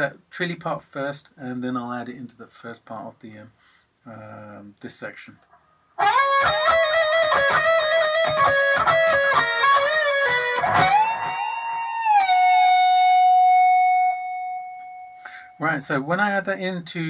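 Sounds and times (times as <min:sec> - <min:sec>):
electric guitar lead: 0:06.0 - 0:15.6.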